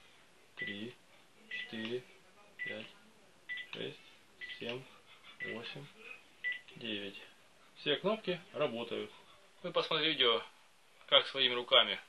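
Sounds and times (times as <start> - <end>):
phone keypad beeps: 3.5 - 3.7, 6.4 - 6.7.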